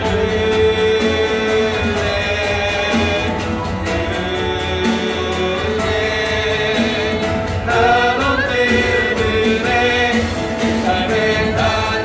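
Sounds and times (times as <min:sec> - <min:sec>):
acoustic guitar: 0:00.0 - 0:12.0
group of voices singing: 0:00.0 - 0:12.0
piano: 0:00.0 - 0:12.0
steady beat: 0:00.0 - 0:12.0.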